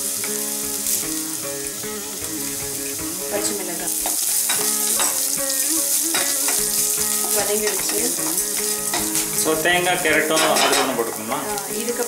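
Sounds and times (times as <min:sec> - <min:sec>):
spices sizzling in hot oil: 0:00.0 - 0:12.0.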